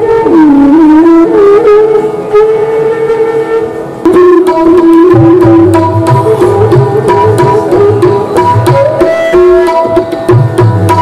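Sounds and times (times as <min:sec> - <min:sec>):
bamboo flute long note: 0:00.0 - 0:09.9.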